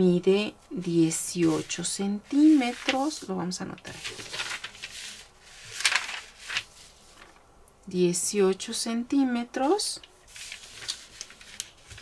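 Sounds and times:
paper sheets rustling: 0:01.2 - 0:07.4, 0:10.0 - 0:12.0.

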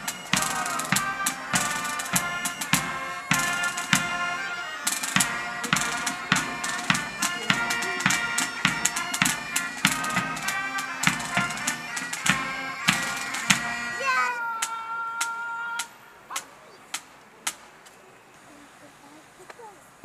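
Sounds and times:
bagpipe melody: 0:00.0 - 0:14.4
steady drumbeats: 0:00.0 - 0:17.7.

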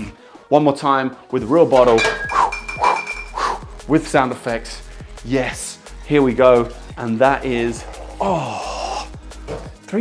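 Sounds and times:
glass bottle clink: 0:01.8 - 0:03.4.

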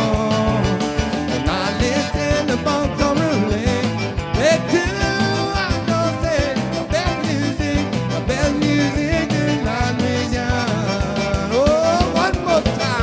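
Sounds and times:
button accordion: 0:00.0 - 0:13.0
live dance band playing: 0:00.0 - 0:13.0
steady drum beat: 0:00.0 - 0:13.0.

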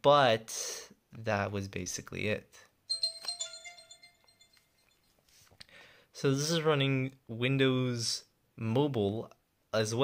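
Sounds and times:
bell-like chime: 0:02.9 - 0:05.2.

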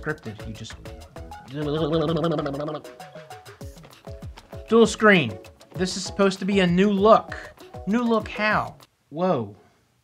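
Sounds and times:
plucked notes with ticking beat: 0:00.0 - 0:08.9.

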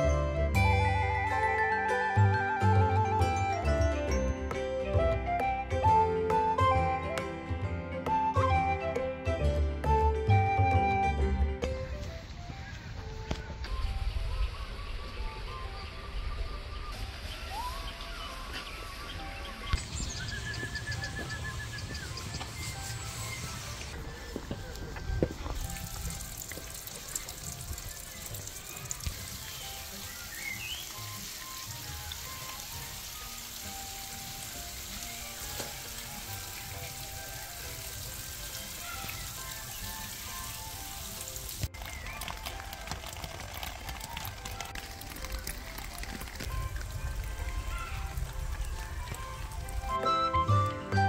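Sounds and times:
water dripping down rock: 0:24.4 - 0:50.0.

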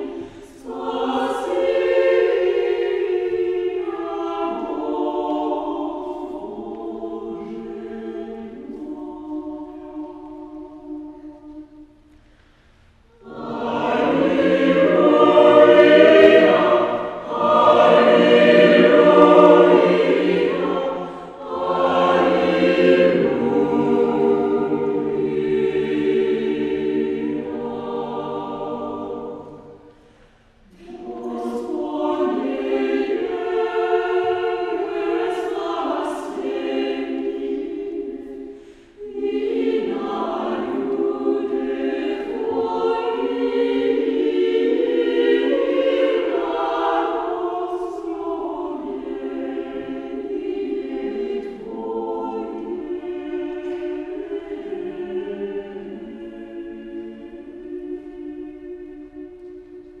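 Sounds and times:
mixed choir singing a cappella: 0:00.0 - 0:12.2, 0:12.9 - 1:00.0.

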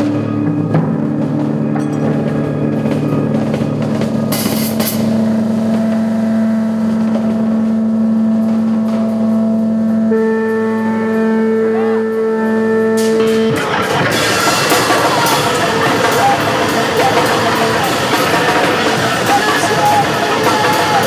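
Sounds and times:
live rock band droning notes: 0:00.0 - 0:21.0.

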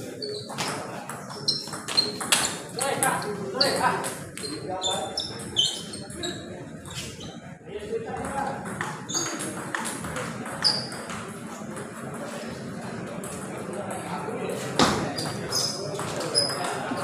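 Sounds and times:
spectators chattering: 0:00.0 - 0:17.0.

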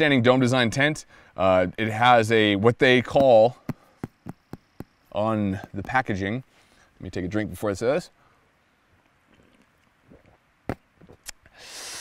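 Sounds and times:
man gulping: 0:09.2 - 0:11.4
breathy exhale: 0:11.5 - 0:12.0.

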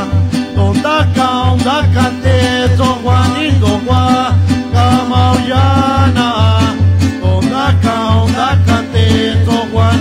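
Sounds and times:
plucked strings: 0:00.0 - 0:10.0.

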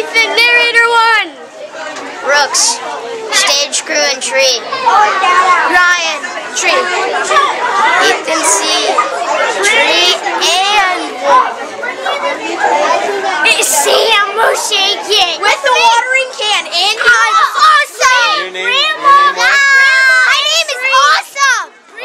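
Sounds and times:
children chattering: 0:00.0 - 0:22.0.

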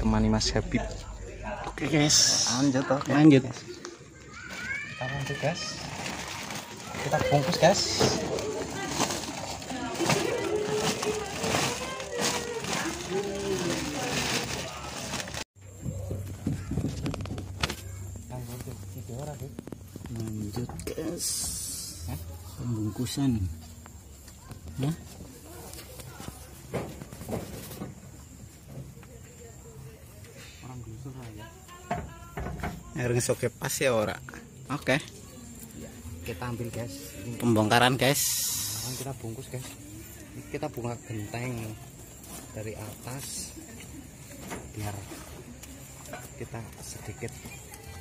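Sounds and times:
indistinct voices: 0:00.0 - 0:16.8
plastic sack rustling: 0:04.4 - 0:15.5.

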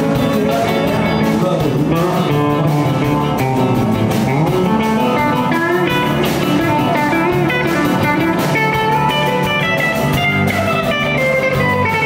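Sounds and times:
electric guitars playing: 0:00.0 - 0:12.0
lead guitar sliding notes: 0:00.0 - 0:12.0.

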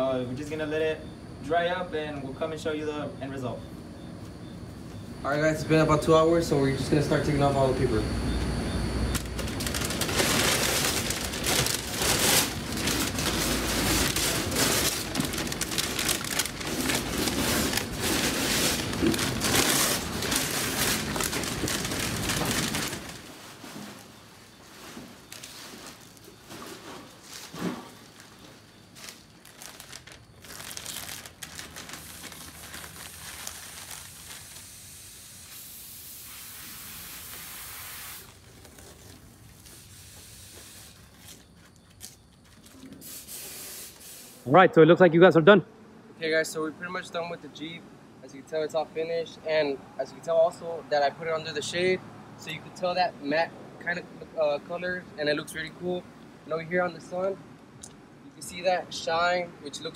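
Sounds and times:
paper and tape tearing and crumpling: 0:09.3 - 0:23.3, 0:29.0 - 0:34.9, 0:37.8 - 0:44.3
faint steady hiss: 0:31.0 - 0:41.4.

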